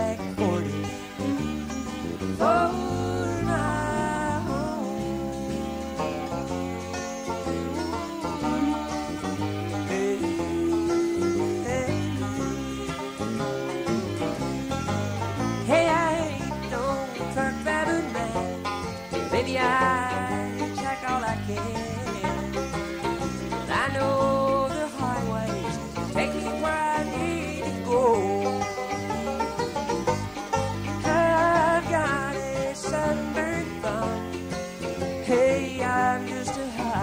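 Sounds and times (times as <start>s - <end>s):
banjo: 0.0s - 37.0s
bluegrass band playing: 0.0s - 37.0s.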